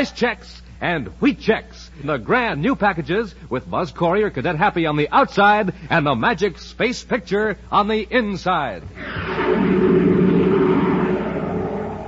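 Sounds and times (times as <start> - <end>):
roaring sound effect: 9.0 - 12.0.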